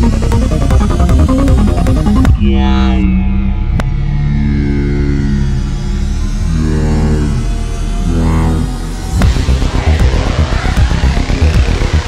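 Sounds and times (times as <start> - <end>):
synth and percussion beat: 0.0 - 4.1, 9.1 - 12.0
held synth tones over bass: 0.0 - 12.0
high tone sliding downward: 0.0 - 12.0.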